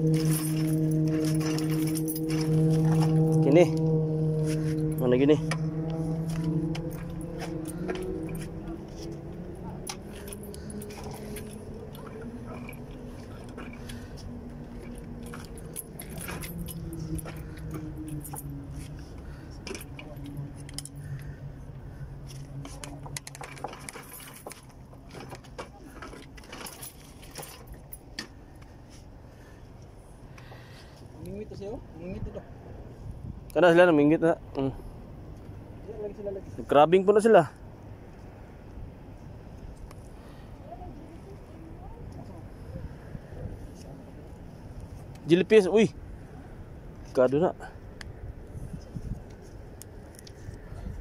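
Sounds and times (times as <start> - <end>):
metallic jangling and clicks: 0.0 - 3.5, 9.8 - 21.2, 22.3 - 28.3
bicycle rattling: 0.0 - 21.4
steady low hum: 0.0 - 33.5.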